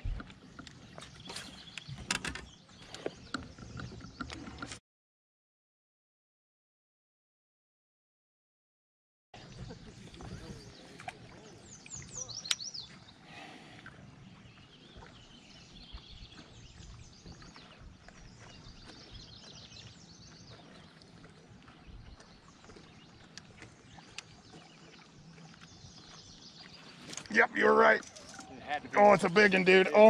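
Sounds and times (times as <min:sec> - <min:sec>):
birds chirping: 0:00.0 - 0:04.8, 0:09.4 - 0:30.0
outdoor background noise: 0:00.0 - 0:04.8, 0:09.4 - 0:30.0.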